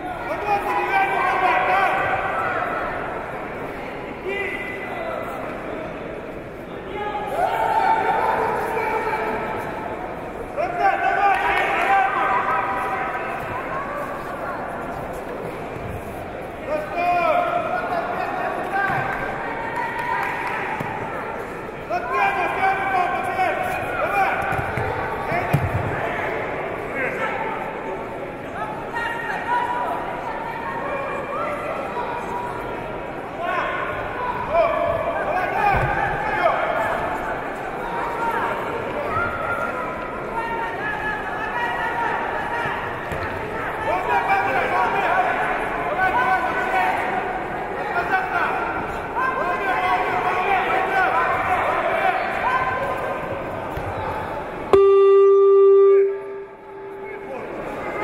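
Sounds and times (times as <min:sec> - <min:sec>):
voices shouting and talking: 0:00.0 - 0:58.0
electronic scoreboard buzzer: 0:54.7 - 0:57.0.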